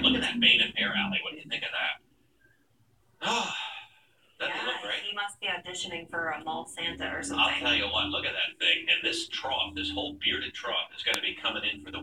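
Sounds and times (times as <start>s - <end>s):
person talking on television: 0.0s - 2.0s, 4.4s - 12.0s
breathy sigh: 3.2s - 4.1s.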